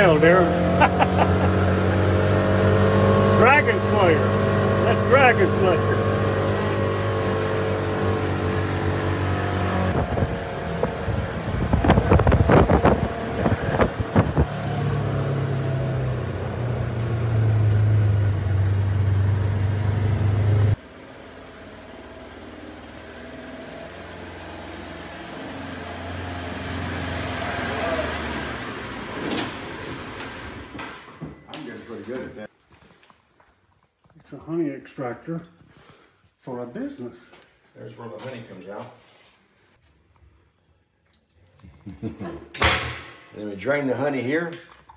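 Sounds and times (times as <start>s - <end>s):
utility vehicle engine running: 0.0s - 30.8s.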